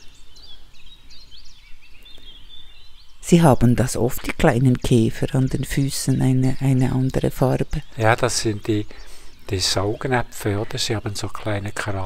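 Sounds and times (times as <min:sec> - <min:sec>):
small birds chirping: 0:00.0 - 0:12.0.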